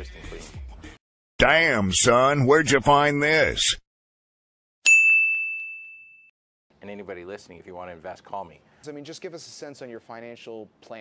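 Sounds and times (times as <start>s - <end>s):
bright high ping: 4.8s - 6.3s.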